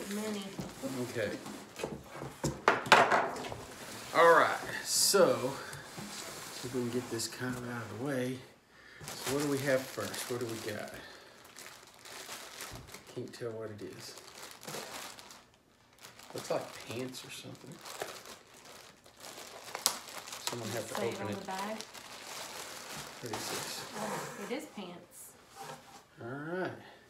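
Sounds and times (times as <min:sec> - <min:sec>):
plastic crinkling: 0:00.0 - 0:01.8, 0:09.0 - 0:24.6.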